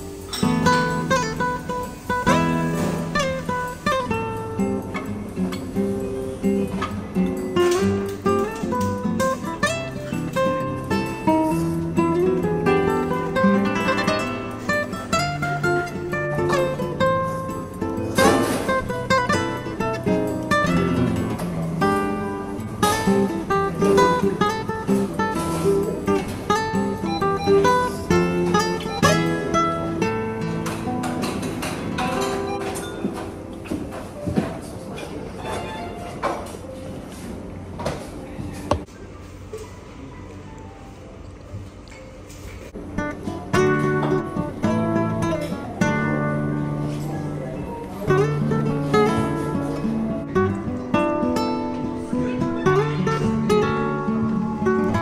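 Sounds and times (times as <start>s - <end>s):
flamenco acoustic guitar: 0.0s - 38.9s, 41.6s - 55.0s.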